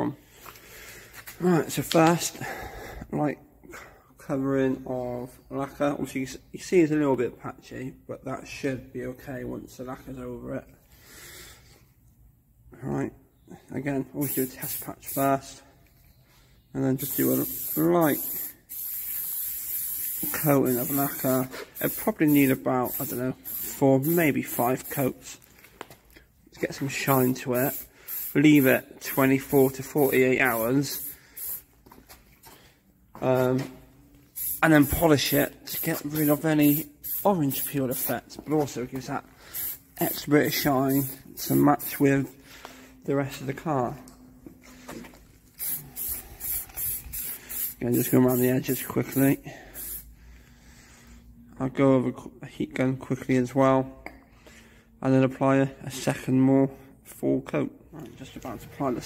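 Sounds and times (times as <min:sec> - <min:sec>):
aerosol can spraying: 0:14.2 - 0:15.2, 0:17.0 - 0:25.1, 0:27.1 - 0:31.7, 0:34.3 - 0:38.3, 0:39.5 - 0:42.0, 0:45.6 - 0:50.1.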